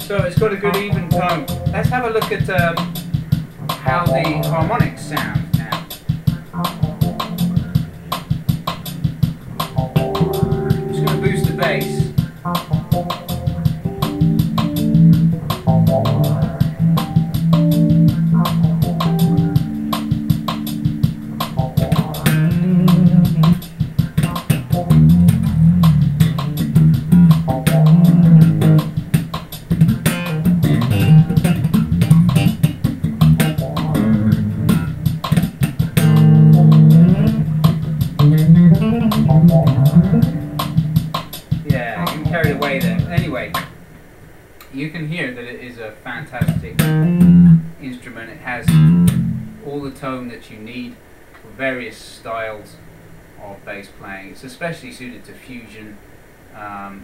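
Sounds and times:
electric bass played solo: 0:00.7 - 0:05.8, 0:06.4 - 0:43.7, 0:46.4 - 0:47.8, 0:48.6 - 0:49.6.

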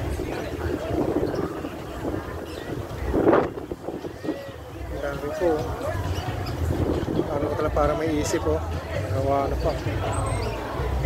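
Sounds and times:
wind buffeting microphone: 0:00.0 - 0:08.7.

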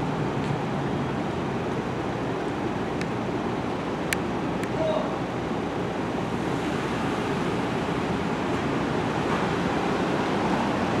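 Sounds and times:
city street ambience: 0:00.0 - 0:11.0.

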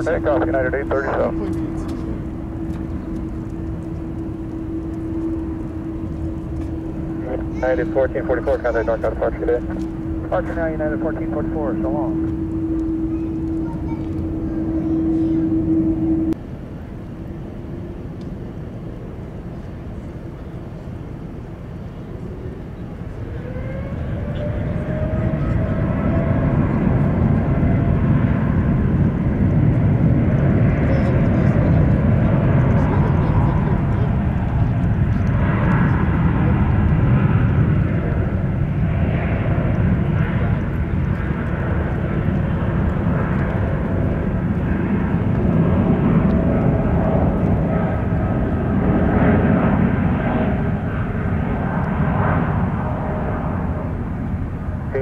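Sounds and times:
jet engines roaring at takeoff: 0:00.0 - 0:55.0.

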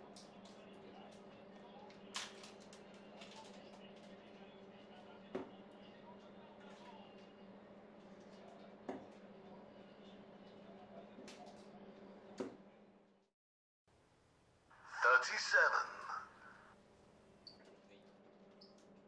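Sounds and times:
darts thudding into dartboard: 0:12.4 - 0:12.6.

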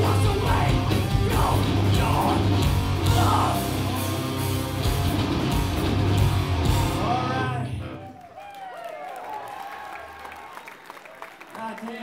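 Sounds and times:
shouted vocals: 0:00.0 - 0:03.8, 0:07.0 - 0:10.4
hardcore band playing: 0:00.0 - 0:08.0.

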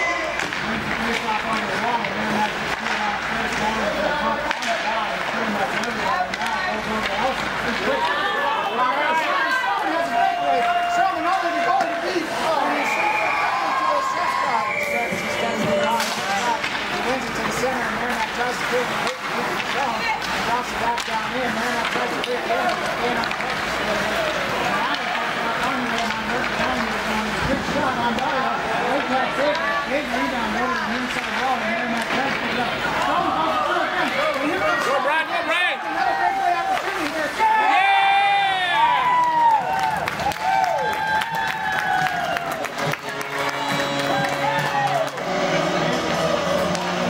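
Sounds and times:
hockey sticks and puck clacking: 0:00.0 - 0:08.4, 0:09.2 - 0:47.0
people talking: 0:00.0 - 0:38.8, 0:42.7 - 0:47.0.

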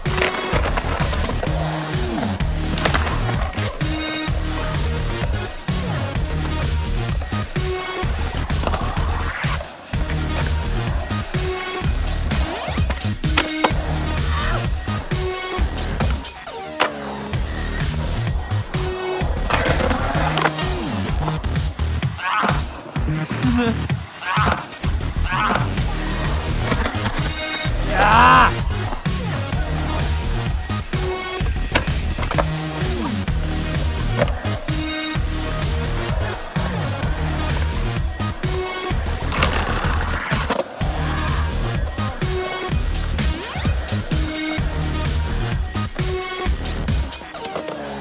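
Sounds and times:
music playing: 0:00.0 - 0:48.0
skateboard wheels rolling on concrete: 0:00.0 - 0:48.0.

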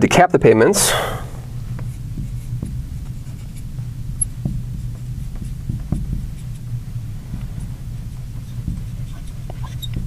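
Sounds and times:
steady low hum: 0:00.0 - 0:10.0
marker tapping and stroking on glass: 0:01.7 - 0:10.0.

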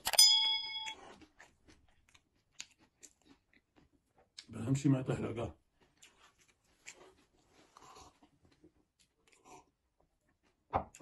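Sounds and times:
bell-like notification ding: 0:00.1 - 0:01.0
faint chewing clicks: 0:00.9 - 0:04.6.

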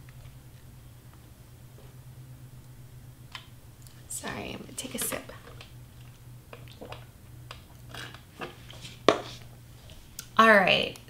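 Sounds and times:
low steady hum: 0:00.0 - 0:11.0
person sipping and swallowing: 0:05.6 - 0:07.1.

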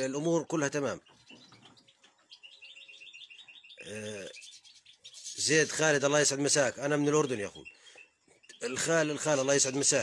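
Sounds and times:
bird twittering high chirps: 0:00.0 - 0:10.0
man's voice: 0:08.6 - 0:10.0.

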